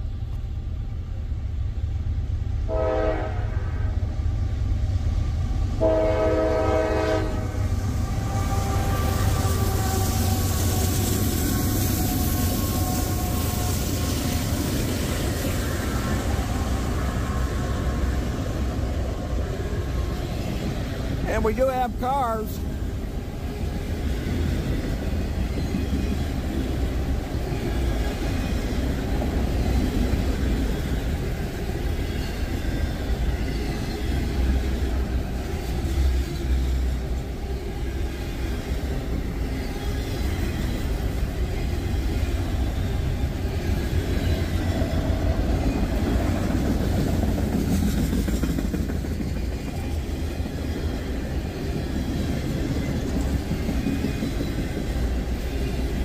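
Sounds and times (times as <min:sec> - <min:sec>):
freight train rumbling past: 0:00.0 - 0:56.0.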